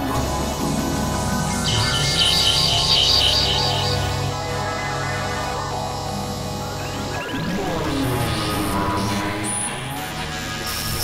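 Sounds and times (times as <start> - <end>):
synthesizer drone: 0.0 - 11.0
high chirp-like pulse: 0.6 - 4.6.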